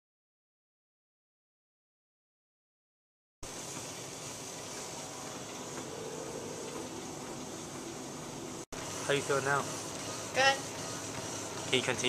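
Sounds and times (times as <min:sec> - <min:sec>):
treadmill running: 0:03.4 - 0:12.0.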